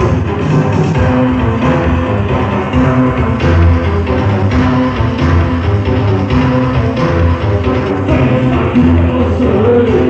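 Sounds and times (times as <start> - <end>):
industrial electronic music: 0.0 - 10.0.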